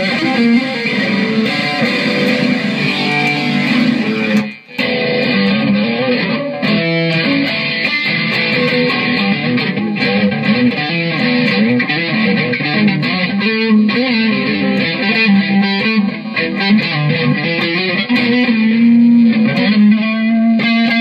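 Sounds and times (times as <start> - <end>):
electric guitar through amplifier: 0.0 - 21.0.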